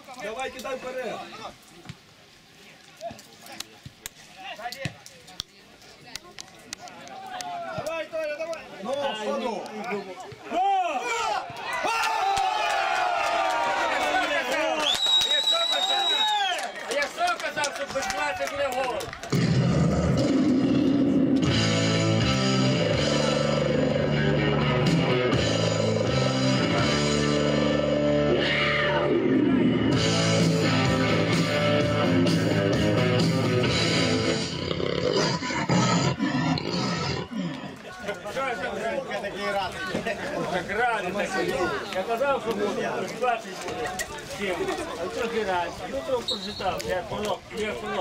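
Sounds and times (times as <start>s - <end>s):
whistle blast: 14.8s - 16.6s, 46.3s - 46.8s
rock music: 21.4s - 34.5s.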